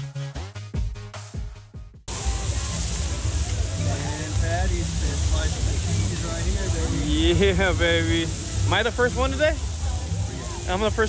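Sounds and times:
patties sizzling on griddle: 2.1 - 11.0
voices in background: 2.1 - 11.0.

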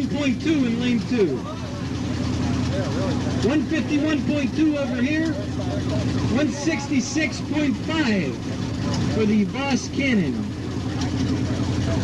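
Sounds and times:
man talking: 0.0 - 1.8, 2.7 - 10.6
vehicle engine idling: 0.0 - 12.0.

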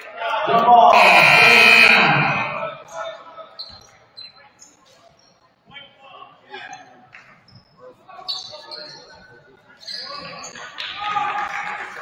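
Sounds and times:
voices: 0.0 - 3.5
scoreboard horn: 0.9 - 2.4.

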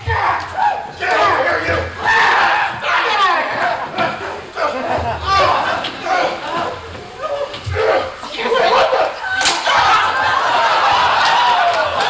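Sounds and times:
indistinct talking in a hall: 0.0 - 12.0.

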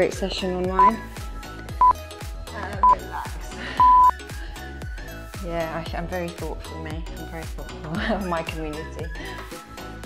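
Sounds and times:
background music with steady beat: 0.0 - 10.0
interval timer beeps: 1.8 - 2.0, 3.8 - 4.2.

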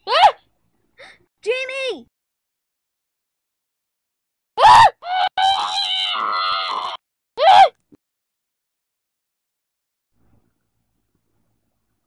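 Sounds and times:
person screaming: 4.6 - 7.7.

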